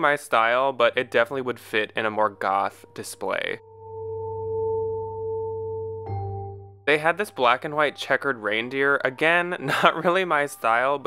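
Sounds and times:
soft sustained synth chord: 0.8s - 9.4s.

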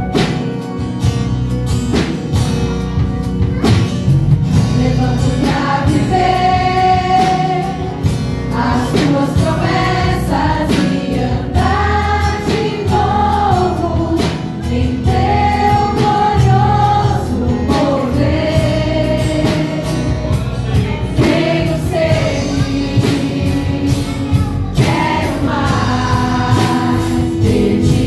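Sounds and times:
instrumental accompaniment with beat: 0.0s - 28.0s
women's choir singing gospel: 4.5s - 28.0s.

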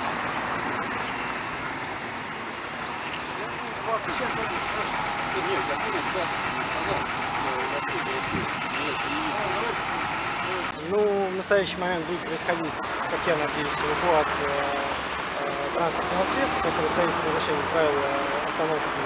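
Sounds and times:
vehicle engine hum: 0.0s - 19.0s
indistinct voices: 3.3s - 19.0s.

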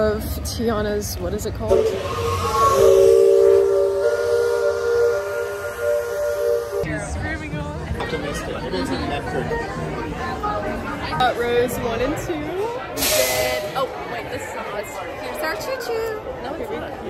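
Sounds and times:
steam whistle chord: 1.7s - 6.9s.

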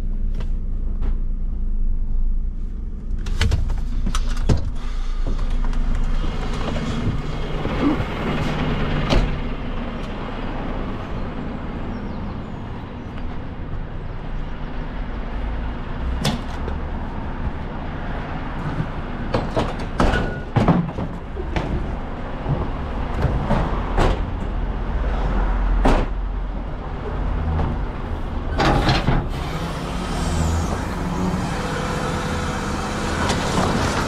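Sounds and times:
diesel engine idling: 0.0s - 16.1s
sharp knocks and clatters: 18.6s - 24.5s.

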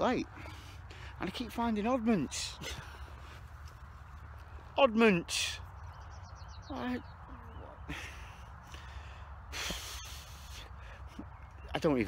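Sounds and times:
man snorting through nose: 9.5s - 10.8s.

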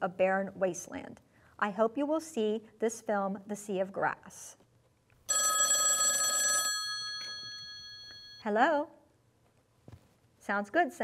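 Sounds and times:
telephone bell ringing: 5.3s - 8.5s.

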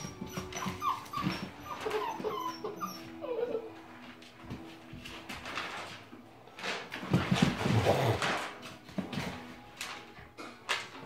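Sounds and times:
puppies play growling: 0.0s - 4.9s, 6.6s - 9.5s
puppies scuffling on wooden floor: 0.0s - 11.0s.

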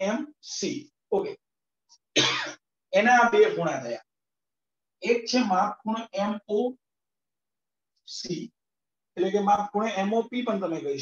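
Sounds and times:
man clearing his throat: 2.2s - 2.6s.

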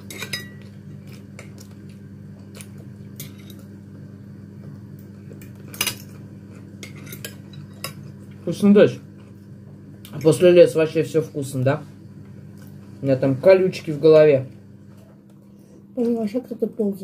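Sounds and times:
steady low hum: 0.0s - 17.0s
fork scraping a plate: 3.2s - 3.7s, 5.8s - 8.0s.

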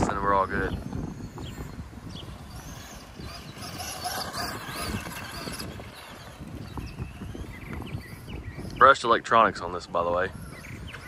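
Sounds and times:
distant electric motor whine: 0.0s - 11.0s
wind buffeting microphone: 0.0s - 11.0s.

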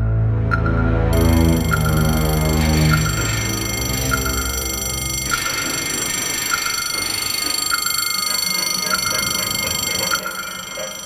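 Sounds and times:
warning signal ringing: 0.6s - 11.0s
steady high whine: 1.2s - 11.0s.

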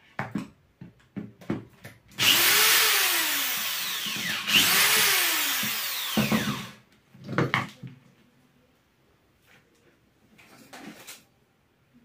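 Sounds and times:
power drill running: 2.2s - 6.8s.

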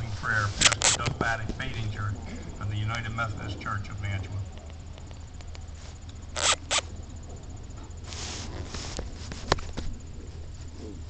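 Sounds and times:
scraping rustles: 0.0s - 1.9s, 7.8s - 11.0s
low background hum: 0.0s - 11.0s.

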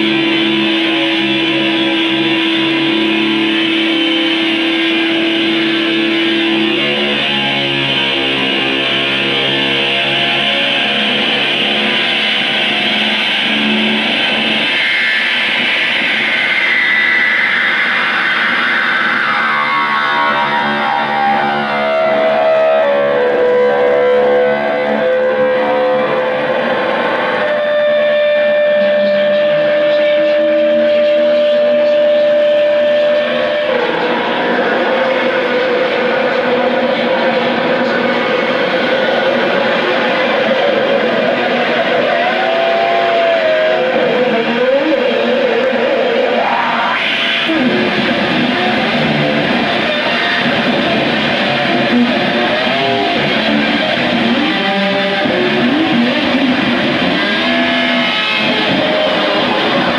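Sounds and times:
distorted electric guitar noise: 0.0s - 59.9s.

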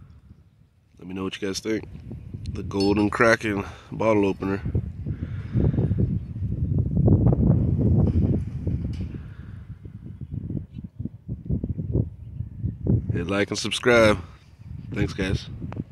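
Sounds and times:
wind buffeting microphone: 0.0s - 15.9s.

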